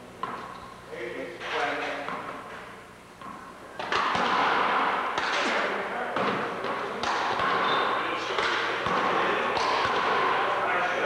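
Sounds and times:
handball slapping wall and floor: 0.2 - 0.6, 1.6 - 11.0.

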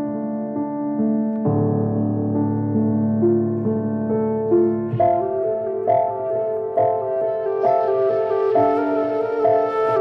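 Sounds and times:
calm piano music: 0.0 - 10.0.

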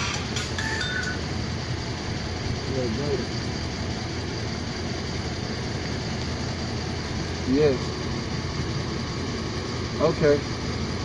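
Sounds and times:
vehicle engine idling: 0.0 - 11.0
two-note high tone: 0.4 - 1.3.

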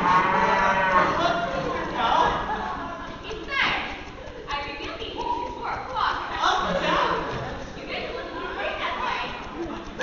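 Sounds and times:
cow mooing: 0.0 - 1.8.

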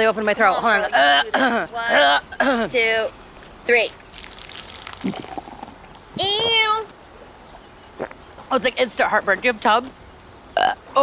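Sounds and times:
liquid pouring down a funnel tube: 4.1 - 6.0.

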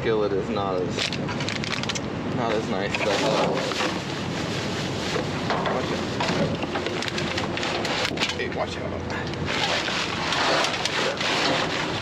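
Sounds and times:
rake scraping through trash: 2.9 - 6.6, 9.5 - 12.0.

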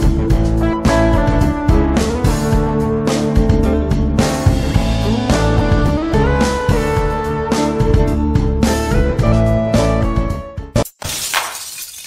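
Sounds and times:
background music: 0.0 - 10.9
crashing shattering sound effect: 11.0 - 12.0.

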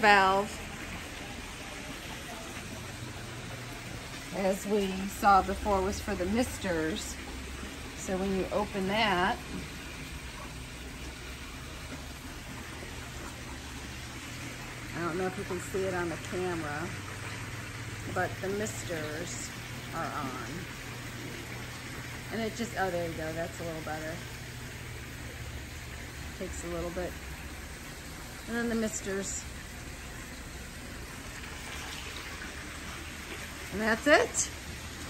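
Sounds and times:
low steady hum: 0.0 - 35.0
water splashing from fountain: 0.0 - 35.0.

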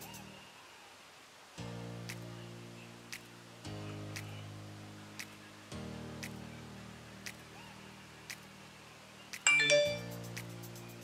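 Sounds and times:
soft background music: 0.0 - 0.8, 1.6 - 11.0
bright bell-like chime: 9.5 - 10.3.

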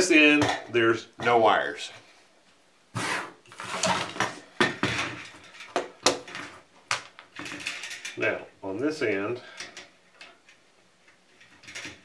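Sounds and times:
wires rustling: 0.0 - 12.0.

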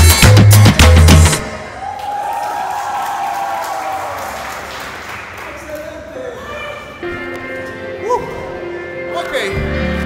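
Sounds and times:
salsa music with heavy bass: 0.0 - 1.5
people cheering and applauding: 1.6 - 6.9.

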